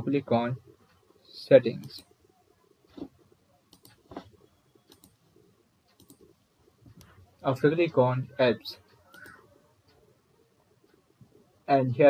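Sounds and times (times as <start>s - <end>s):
computer mouse clicks: 2.9s - 5.3s, 5.9s - 7.2s, 8.9s - 10.1s.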